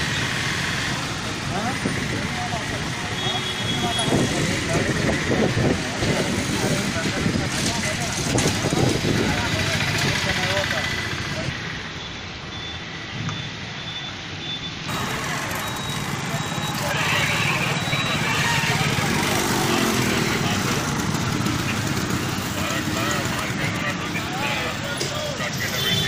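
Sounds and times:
people's voices: 0:00.0 - 0:11.8, 0:14.9 - 0:26.0
motorcycle engines idling: 0:00.0 - 0:12.0, 0:14.9 - 0:26.0
street noise: 0:00.0 - 0:26.0.

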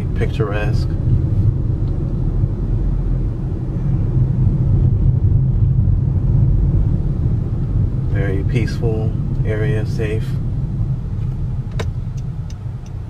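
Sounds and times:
car engine and tyre noise: 0:00.0 - 0:13.0.

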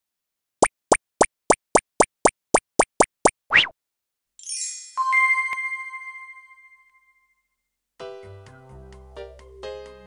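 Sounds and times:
cartoon pops: 0:00.6 - 0:03.8.

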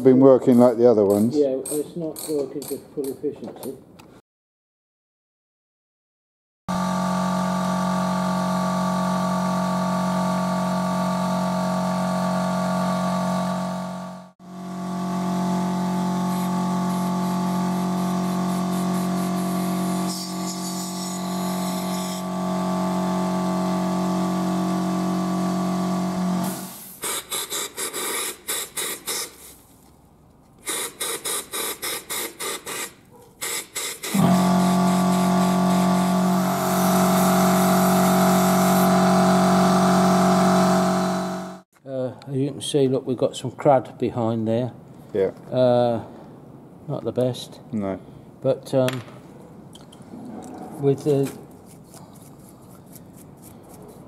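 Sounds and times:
air compressor running: 0:06.7 - 0:29.5, 0:30.6 - 0:41.7.

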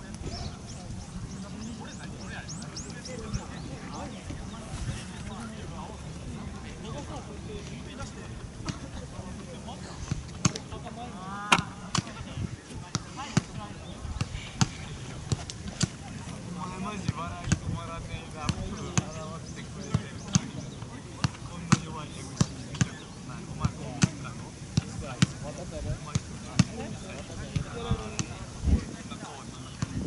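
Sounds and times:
soccer balls being kicked: 0:17.0 - 0:19.2, 0:19.8 - 0:23.0, 0:23.6 - 0:28.4, 0:29.7 - 0:30.0.

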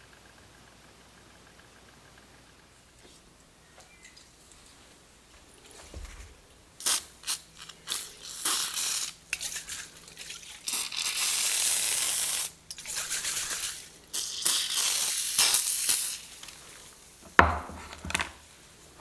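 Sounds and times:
aerosol can spraying: 0:06.8 - 0:09.9, 0:10.6 - 0:16.6.

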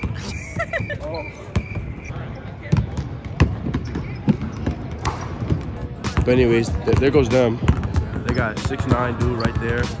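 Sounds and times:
basketballs bouncing on hardwood: 0:00.0 - 0:10.0.

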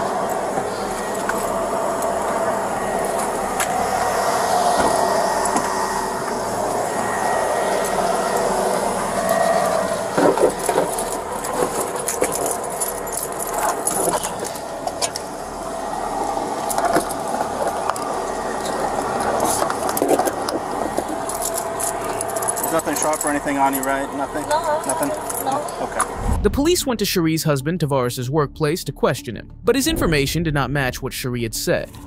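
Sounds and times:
car engine idling hum: 0:00.0 - 0:27.2
metal clinks: 0:21.2 - 0:25.8.

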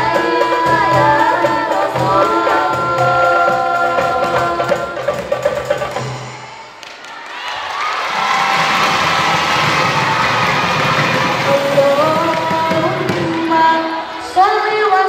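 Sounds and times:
girls singing: 0:00.0 - 0:06.5, 0:09.6 - 0:15.0.

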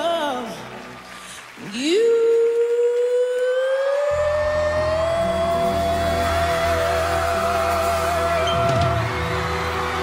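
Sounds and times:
band accompaniment: 0:04.4 - 0:10.0.

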